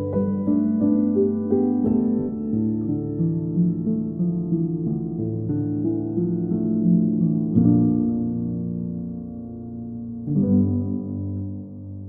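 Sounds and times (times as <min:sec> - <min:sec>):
slow solo piano chords: 0:00.0 - 0:12.0.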